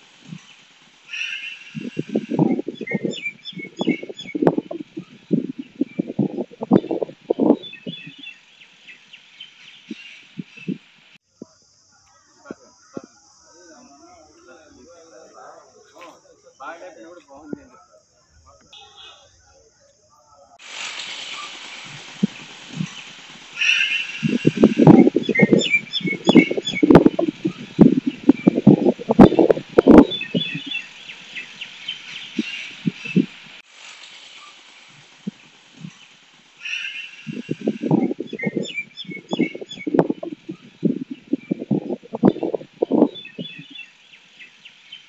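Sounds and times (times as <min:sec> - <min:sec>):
birds chirping: 0:00.2 - 0:10.9, 0:21.3 - 0:33.6, 0:35.2 - 0:45.0.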